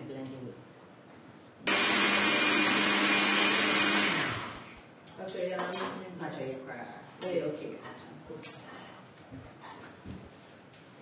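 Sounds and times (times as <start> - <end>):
electric blender running: 1.7 - 4.8.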